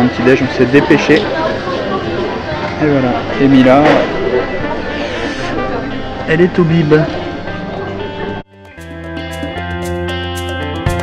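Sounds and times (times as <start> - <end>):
indistinct voices: 0.0 - 8.4.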